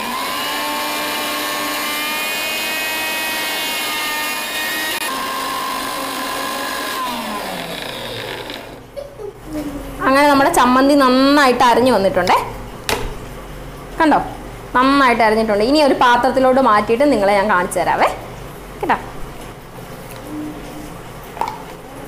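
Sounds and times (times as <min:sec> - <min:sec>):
mixer grinder motor whine: 0:00.0 - 0:08.9.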